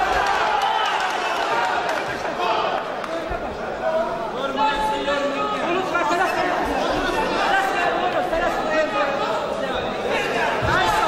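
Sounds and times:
crowd shouting and chatter: 0.0s - 11.0s.

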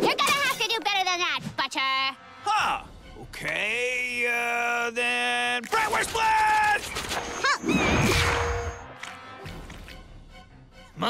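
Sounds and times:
comic sound effects: 6.7s - 8.8s.

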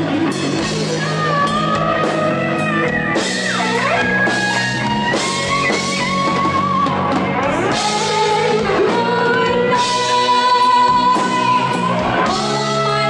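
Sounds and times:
electric guitar bending notes: 0.0s - 13.0s
rock band playing: 0.0s - 13.0s.

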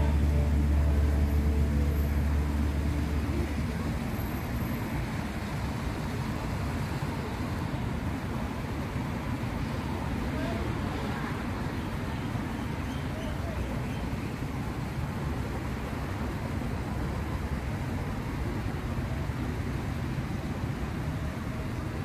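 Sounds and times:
low steady hum: 0.0s - 5.0s
road traffic noise: 0.0s - 22.0s.

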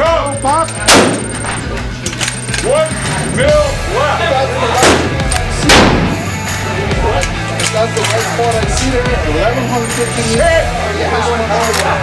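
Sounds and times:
rifle shot: 0.9s - 1.4s, 4.8s - 6.2s.

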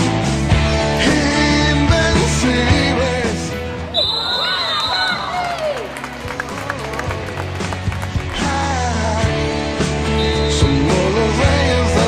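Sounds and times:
background music: 0.0s - 12.0s
referee's whistle blast: 3.9s - 5.4s, 10.1s - 10.8s.

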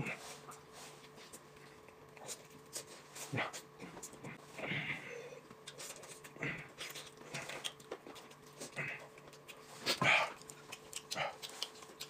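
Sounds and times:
chewing clicks: 10.3s - 12.0s.

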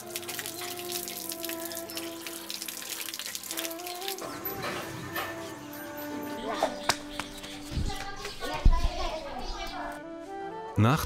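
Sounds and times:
tap water splashing on concrete: 0.0s - 5.4s, 6.8s - 8.6s
metal dishes clinking: 4.2s - 6.8s.

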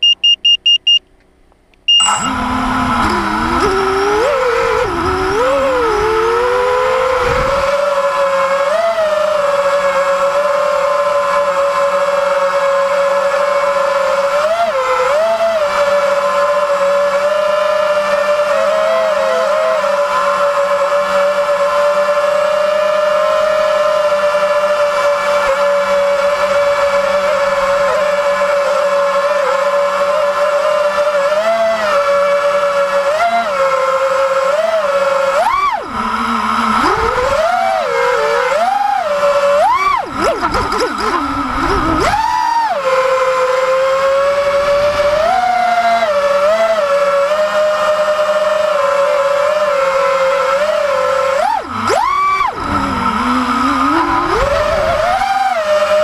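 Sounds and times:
short electronic beeps: 0.0s - 1.1s, 1.9s - 2.5s
drone motors whining: 0.0s - 56.0s.

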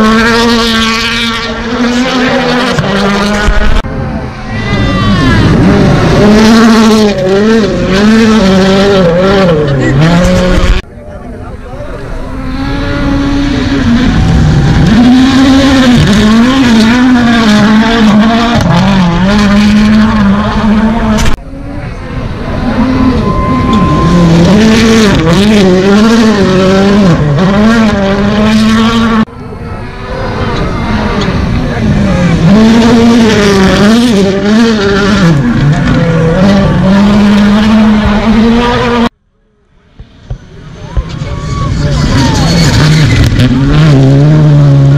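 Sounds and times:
rally car engines racing past: 0.0s - 39.2s, 39.8s - 44.9s.

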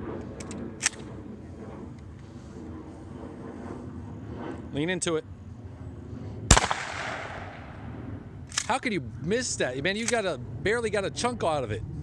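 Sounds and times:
low outdoor background: 0.0s - 12.0s
shotgun metallic clicks: 0.3s - 1.1s, 8.5s - 8.8s, 10.0s - 10.2s.

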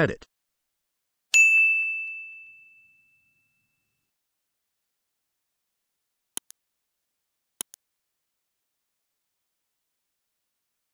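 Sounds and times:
high bell-like ding: 1.4s - 3.9s.

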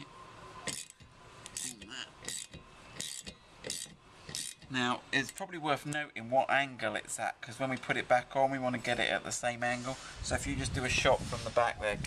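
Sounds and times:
ratchet clicking: 0.7s - 5.4s.

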